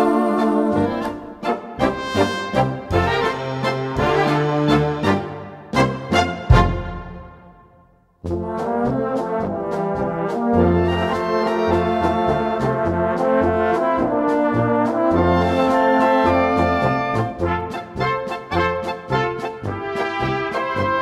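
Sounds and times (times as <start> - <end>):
brass band playing polka: 0.0 - 7.6, 8.2 - 21.0.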